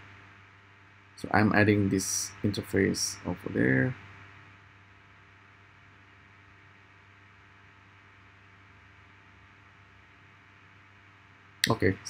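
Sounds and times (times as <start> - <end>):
faint steady hum and hiss: 0.0 - 12.0.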